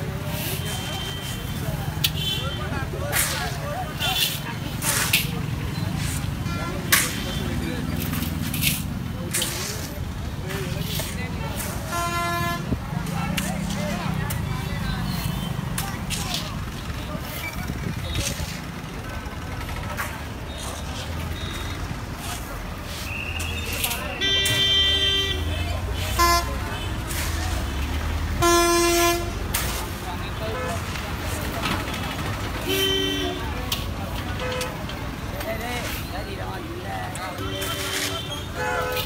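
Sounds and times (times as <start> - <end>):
crowd chatter: 0.0 - 39.0
traffic rumble: 0.0 - 39.0
vehicle horns honking: 0.4 - 2.8, 11.6 - 13.8, 23.4 - 30.9, 32.6 - 33.6, 37.4 - 39.0.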